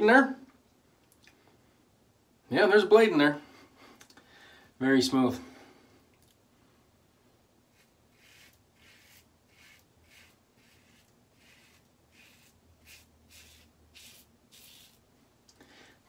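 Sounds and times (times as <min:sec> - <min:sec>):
razor scraping stubble: 0:07.7 - 0:15.0.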